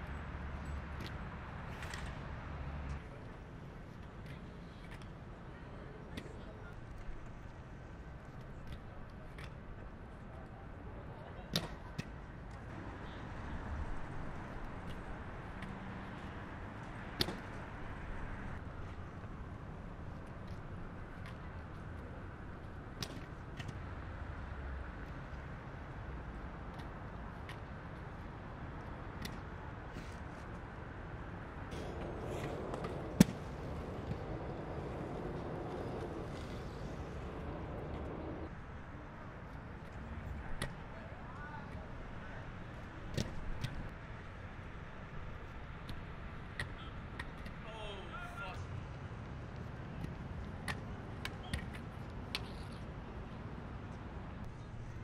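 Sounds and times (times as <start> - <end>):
city street noise: 0.0 - 55.0
inline skates clacking on stone: 31.7 - 38.3, 50.7 - 52.9.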